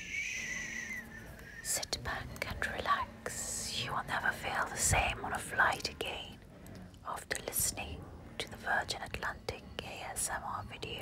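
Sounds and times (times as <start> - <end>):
person whispering closely: 1.2 - 6.4.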